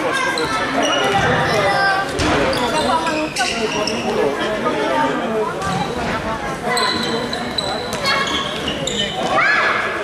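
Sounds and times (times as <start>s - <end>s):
echoing voices in sports hall: 0.0s - 10.0s.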